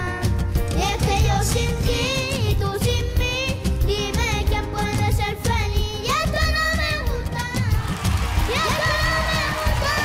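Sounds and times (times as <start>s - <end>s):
boys singing into microphones: 0.0s - 7.9s
reggaeton backing music: 0.0s - 10.0s.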